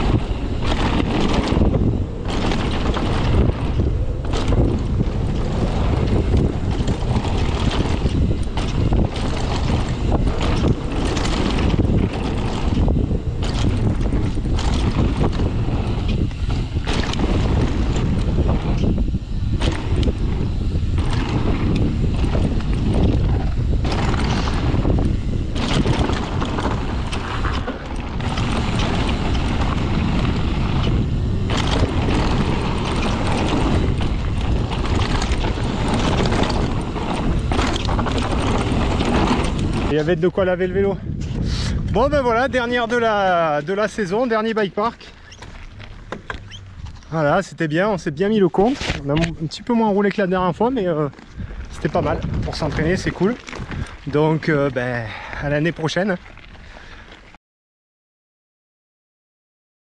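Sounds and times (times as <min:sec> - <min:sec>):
wind rushing over microphone: 0:00.0 - 0:57.2
bike rattling over rocks: 0:00.0 - 0:57.4.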